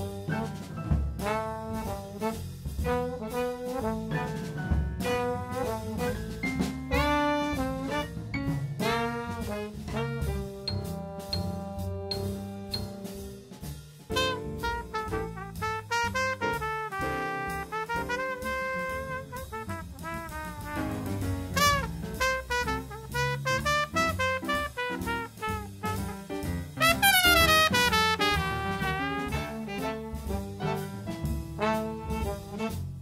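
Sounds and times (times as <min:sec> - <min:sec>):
drum kit beat: 0:00.0 - 0:33.0
swing jazz brass: 0:00.0 - 0:33.0.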